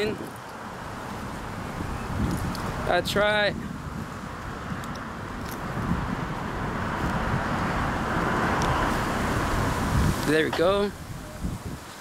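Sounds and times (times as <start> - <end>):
car passing: 0.0 - 11.6
steady low rumble: 0.7 - 11.6.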